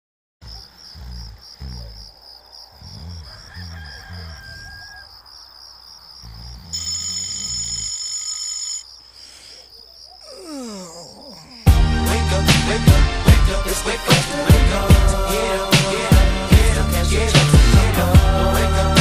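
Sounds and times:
birds chirping: 0.4 - 6.7, 8.8 - 11.8
person snoring: 0.9 - 4.8, 6.2 - 8.0, 9.1 - 12.9.

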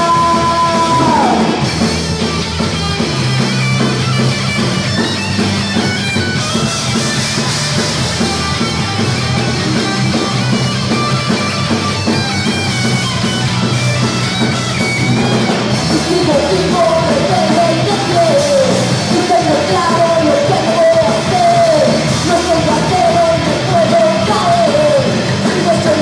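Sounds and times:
bass guitar low notes: 0.0 - 26.0
distorted electric guitar: 0.0 - 26.0
punk rock band playing: 0.0 - 26.0.

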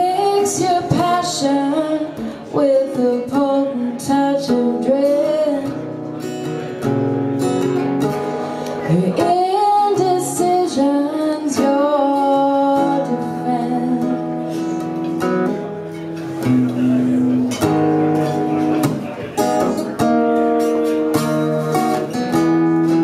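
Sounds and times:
woman singing: 0.0 - 5.8, 8.8 - 14.4
acoustic guitar strumming: 0.0 - 23.0.

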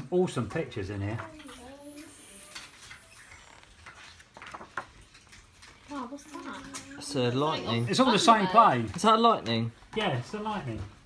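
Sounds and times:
book pages turning: 2.5 - 7.0.

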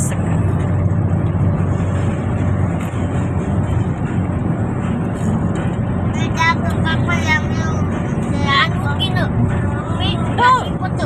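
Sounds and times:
road and engine rumble in van: 0.0 - 11.0.

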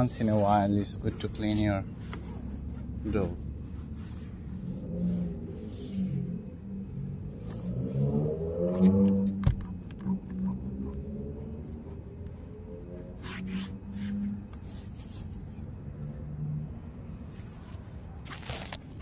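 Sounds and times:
cloth wiping car door trim: 0.0 - 6.2, 13.1 - 15.4
car engine revving: 2.5 - 14.5.

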